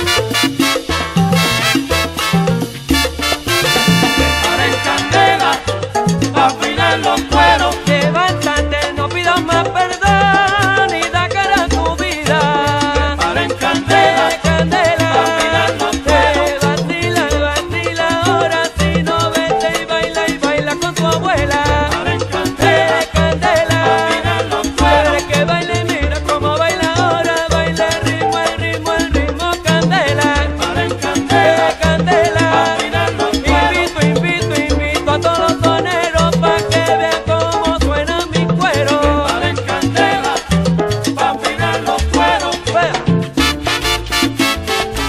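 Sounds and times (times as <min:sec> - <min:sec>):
instrumental salsa music: 0:00.0 - 0:45.0.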